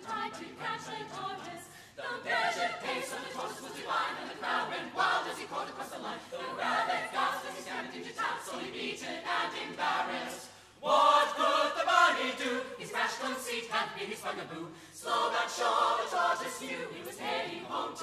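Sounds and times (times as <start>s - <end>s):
a cappella group singing: 0.0s - 18.0s.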